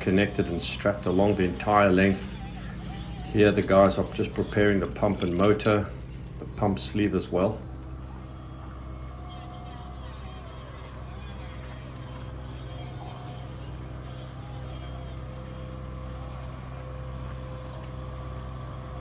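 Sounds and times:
diesel engine running: 0.0s - 19.0s
faint steady whine: 0.0s - 19.0s.

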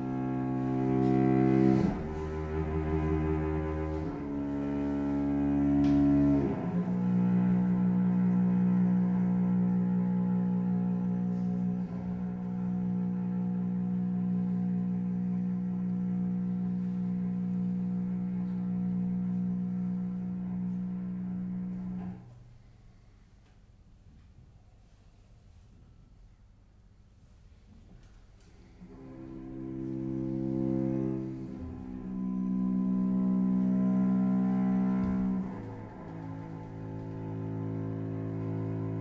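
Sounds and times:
bowed strings holding chords: 0.0s - 22.3s, 28.9s - 39.0s.

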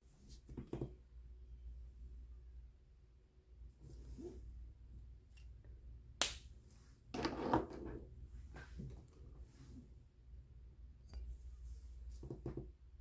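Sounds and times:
rustling and shuffling: 8.2s - 10.0s.

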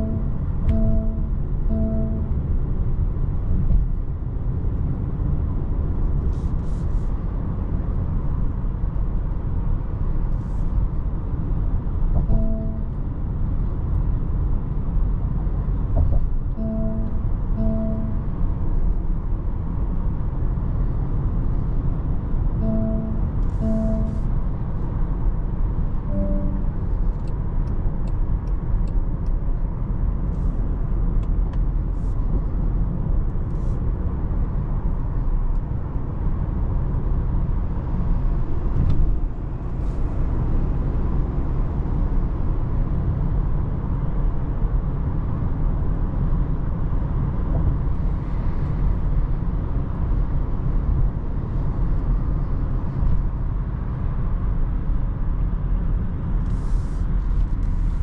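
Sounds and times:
in-car road and engine rumble: 0.0s - 58.0s.

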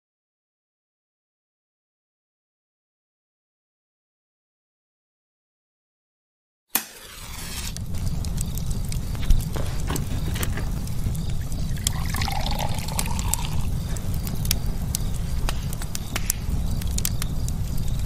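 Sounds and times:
match crackling: 6.8s - 18.0s
steady low rumble: 7.3s - 18.0s.

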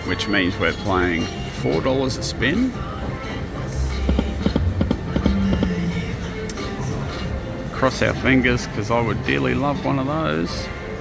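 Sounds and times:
low hum: 2.7s - 7.8s.

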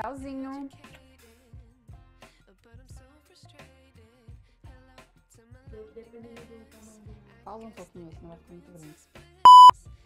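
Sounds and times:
short electronic beep: 9.5s - 9.7s.

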